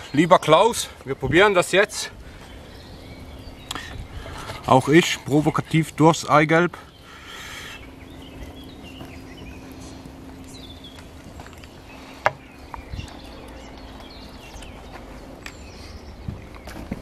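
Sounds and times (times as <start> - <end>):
faint birdsong: 0.0 - 17.0.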